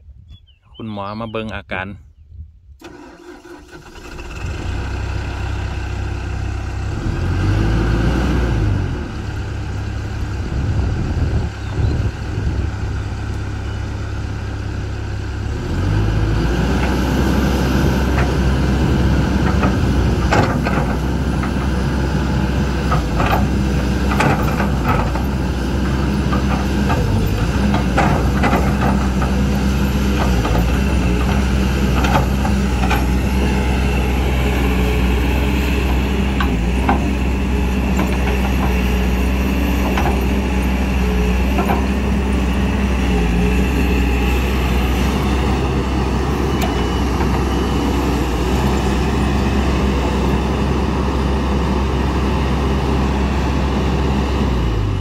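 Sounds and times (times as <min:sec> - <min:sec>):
diesel engine starting and running: 0:02.7 - 0:55.0.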